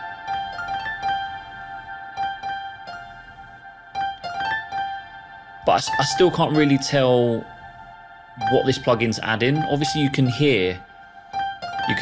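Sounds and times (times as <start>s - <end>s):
piano melody with reverb: 0.0s - 12.0s.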